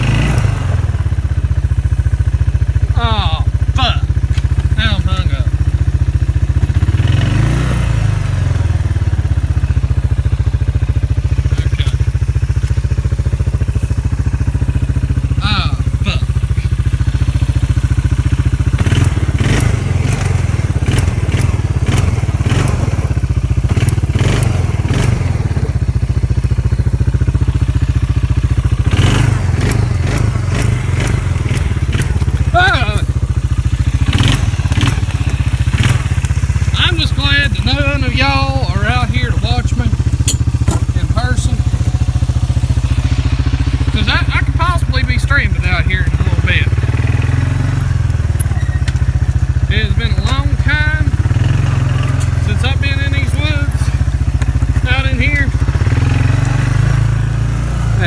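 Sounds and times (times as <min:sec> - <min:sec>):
utility vehicle engine droning: 0:00.0 - 0:58.0
vehicle knocking and clattering: 0:16.8 - 0:42.9.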